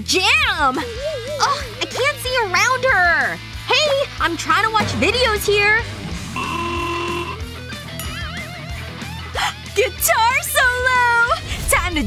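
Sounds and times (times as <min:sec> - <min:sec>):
rock music with electric guitar: 0:00.0 - 0:11.5.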